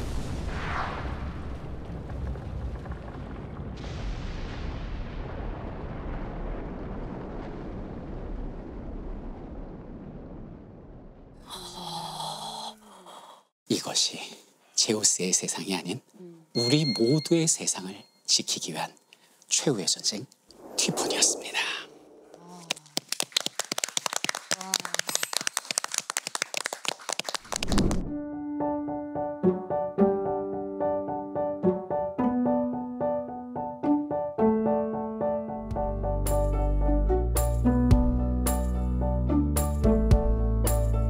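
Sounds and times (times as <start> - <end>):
deep volcanic rumble: 0.0 - 11.5, 20.5 - 22.6
small group applauding: 22.4 - 28.0.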